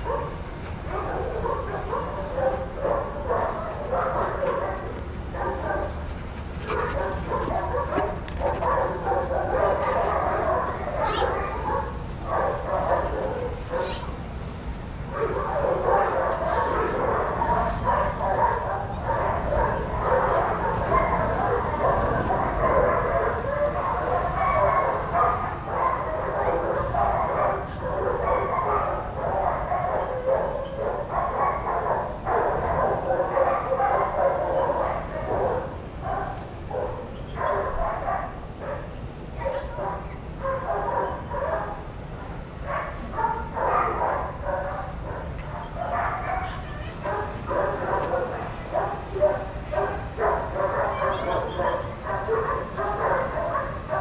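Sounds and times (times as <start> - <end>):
many dogs barking: 0.0 - 54.0.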